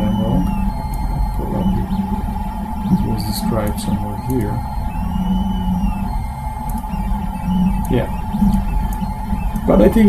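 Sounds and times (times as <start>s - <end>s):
printer hum: 0.0s - 10.0s
stepper motor whine: 0.0s - 10.0s.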